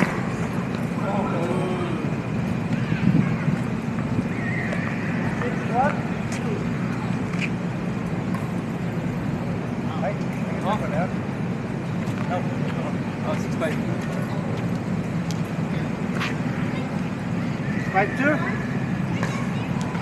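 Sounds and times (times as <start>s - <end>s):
low hum of street traffic: 0.0s - 20.0s
people calling out: 1.0s - 3.7s.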